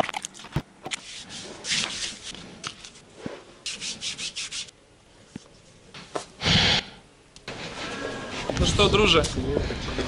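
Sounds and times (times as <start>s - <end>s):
hand rubbing tape on skin: 3.6s - 4.7s.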